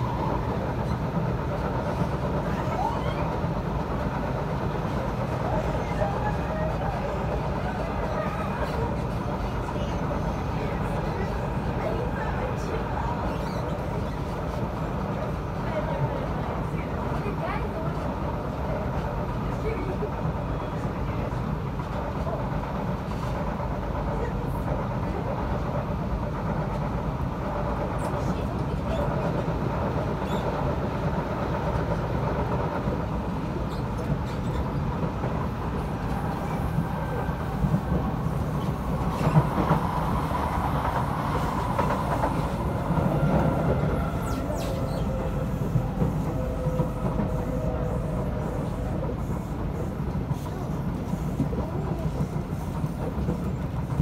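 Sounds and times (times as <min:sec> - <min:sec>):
train passing: 0:00.0 - 0:54.0
train wheels rumbling on rail: 0:00.0 - 0:54.0.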